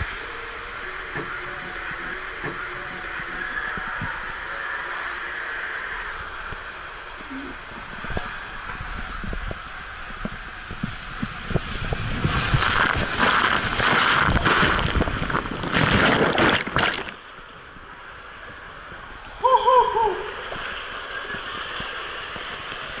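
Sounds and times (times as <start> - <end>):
rushing water: 0.0 - 23.0
body sliding down water slide: 7.2 - 17.3, 19.3 - 23.0
loud splashing: 11.6 - 17.3
person crying out: 19.4 - 20.4.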